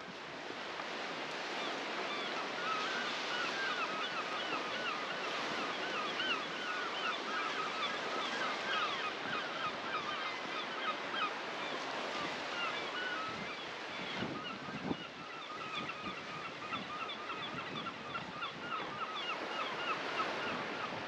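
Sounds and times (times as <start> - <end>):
water: 0.0 - 21.0
wind: 0.0 - 21.0
flock of birds calling: 1.7 - 13.8, 14.4 - 21.0.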